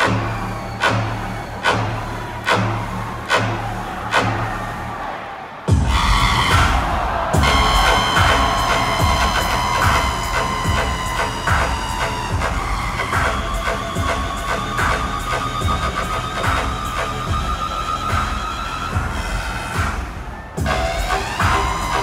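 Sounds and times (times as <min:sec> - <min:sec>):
loud dubstep music with heavy bass: 0:00.0 - 0:05.1, 0:05.7 - 0:22.0.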